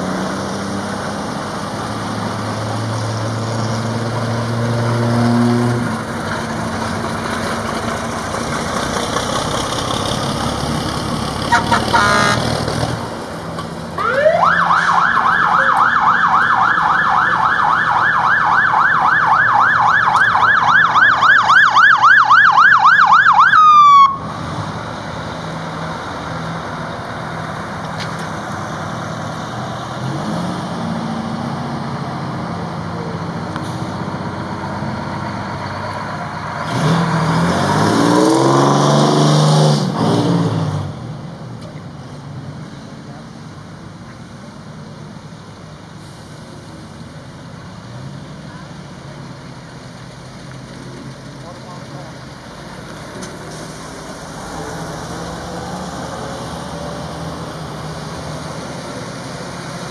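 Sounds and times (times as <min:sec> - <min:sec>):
engine revving: 0:00.0 - 0:17.6, 0:24.2 - 0:41.2
fire truck engines rumbling: 0:00.0 - 0:59.9
fire truck siren yelping: 0:14.0 - 0:24.3.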